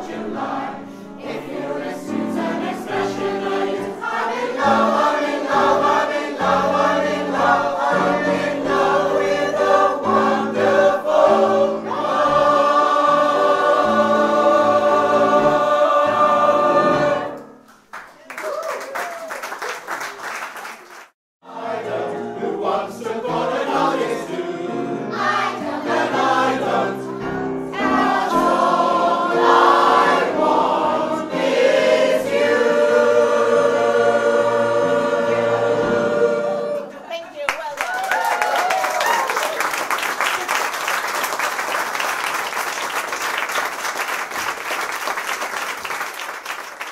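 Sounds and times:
mixed choir singing: 0.0s - 17.6s, 21.4s - 37.1s
audience applause: 17.8s - 21.2s, 37.5s - 46.9s
audience cheer: 18.2s - 20.2s, 37.6s - 40.6s.

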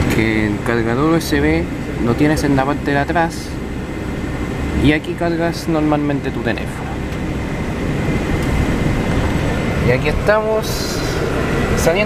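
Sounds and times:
coach cabin road rumble: 0.0s - 12.0s.

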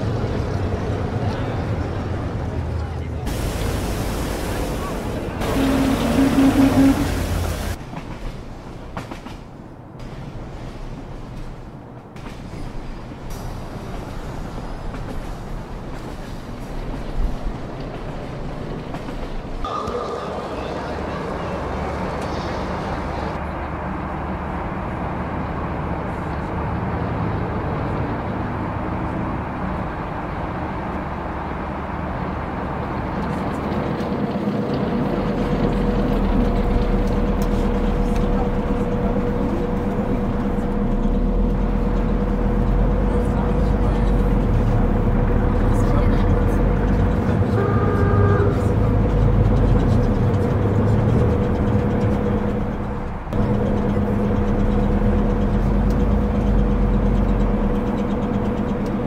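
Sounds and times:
road noise: 0.0s - 59.0s
vehicle engine running: 32.4s - 59.0s.

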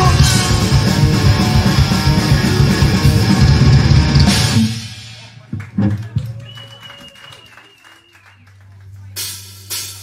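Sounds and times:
audience clapping: 5.4s - 9.4s.

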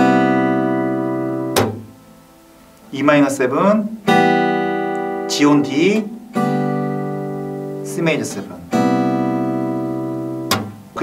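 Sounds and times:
acoustic guitar chord ringing: 0.0s - 11.0s
sharp click: 10.5s - 10.8s.

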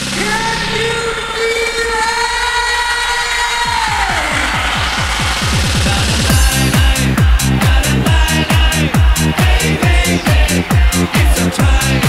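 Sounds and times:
kick-drum roll: 3.6s - 12.0s
held synth chord: 6.3s - 12.0s.

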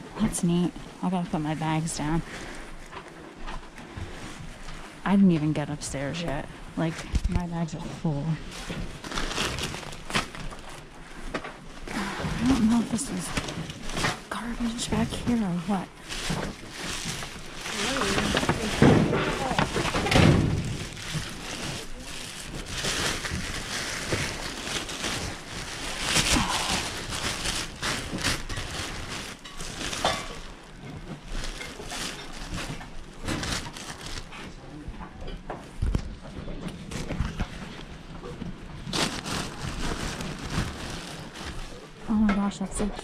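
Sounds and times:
plastic bag rustling and crinkling: 0.0s - 34.9s, 35.6s - 43.0s.

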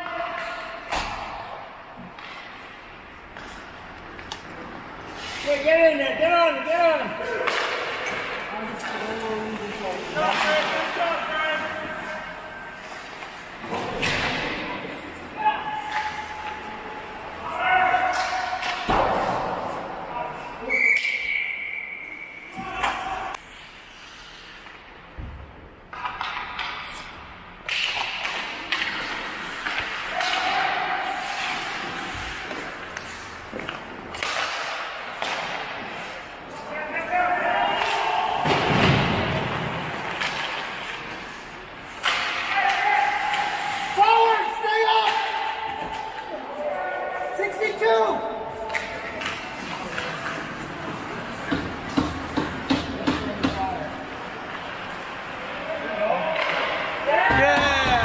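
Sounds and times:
hockey sticks and pucks clacking: 0.0s - 58.0s
players shouting: 30.0s - 32.4s, 36.6s - 39.4s, 42.1s - 53.6s, 55.3s - 58.0s.

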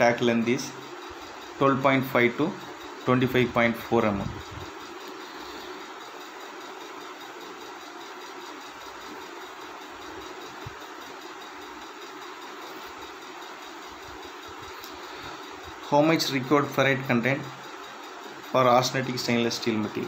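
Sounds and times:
constant hiss: 0.0s - 20.0s.

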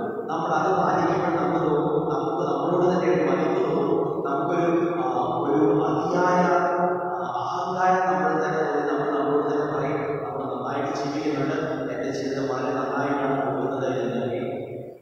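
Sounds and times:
man chanting a sung prayer: 0.3s - 14.5s.

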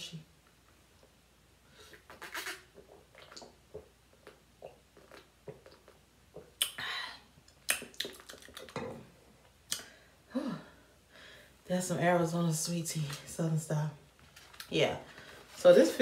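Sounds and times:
person gulping and swallowing: 1.9s - 6.8s, 7.5s - 9.1s.

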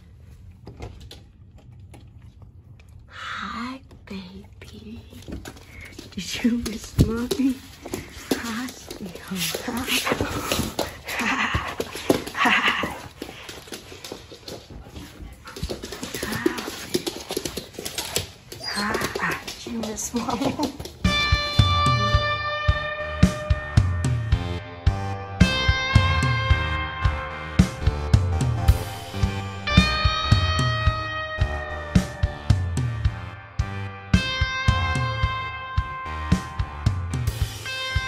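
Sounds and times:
woman laughing: 9.6s - 13.2s, 20.1s - 20.9s.

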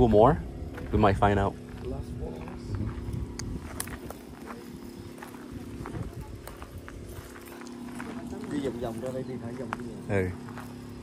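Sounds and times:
footsteps crunching on dry grass: 0.0s - 11.0s
steady low hum: 0.0s - 11.0s.

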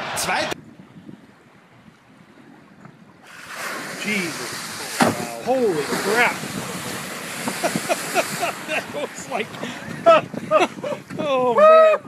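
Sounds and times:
wind on microphone: 0.0s - 12.0s
water splashing against boat: 3.2s - 11.3s.

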